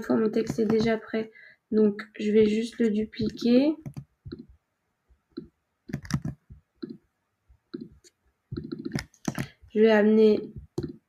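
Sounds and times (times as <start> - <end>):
keyboard and mouse clicks: 0.3 - 1.0, 3.2 - 4.5, 5.3 - 7.0, 7.7 - 9.6, 10.5 - 11.0.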